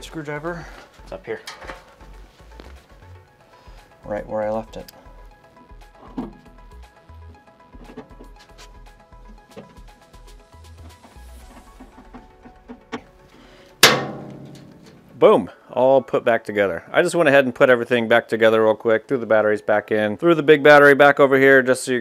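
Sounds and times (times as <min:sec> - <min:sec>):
background music with low beat: 0:00.0 - 0:15.2
loud ringing hit: 0:13.8 - 0:15.2.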